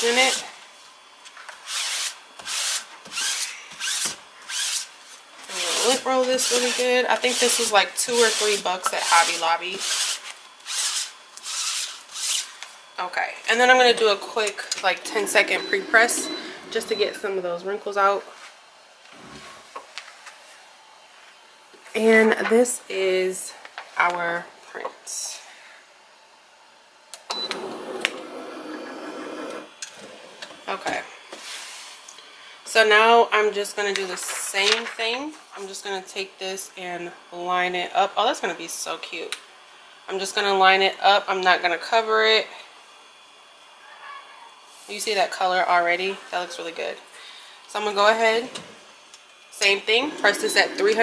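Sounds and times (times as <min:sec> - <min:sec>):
heat press motor whirring: 0:13.9 - 0:17.3, 0:27.2 - 0:30.7, 0:49.6 - 0:51.0.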